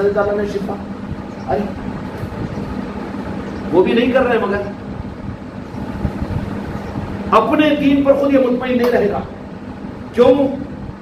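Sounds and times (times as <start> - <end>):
faint steady hum: 0.0 - 11.0
low uneven rumble: 0.0 - 11.0.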